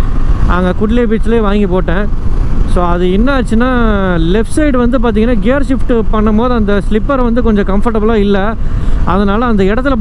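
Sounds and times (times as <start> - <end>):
wind and road noise: 0.0 - 10.0
man talking: 0.5 - 2.1, 2.7 - 10.0.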